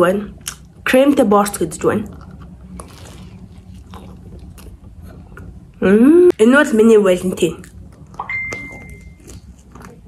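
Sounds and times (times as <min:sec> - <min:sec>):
person chewing: 0:02.0 - 0:05.6, 0:07.6 - 0:10.0
high beep: 0:08.2 - 0:09.2.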